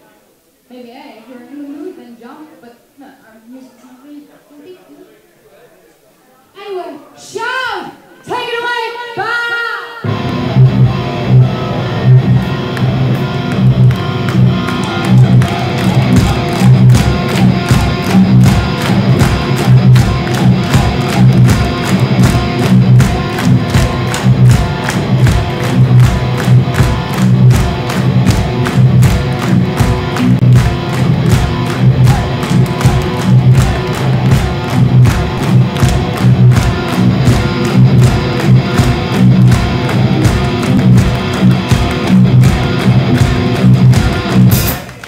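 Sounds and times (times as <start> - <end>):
metal band playing live: 10.0 - 45.0
fast drum hits: 15.5 - 44.8.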